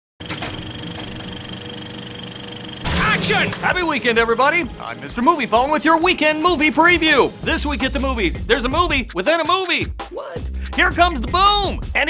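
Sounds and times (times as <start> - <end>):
film projector whirring: 0.2 - 5.1.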